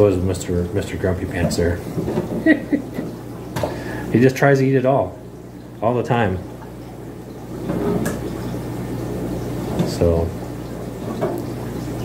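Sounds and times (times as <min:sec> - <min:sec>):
aquarium air pumps humming and bubbling: 0:00.0 - 0:12.0.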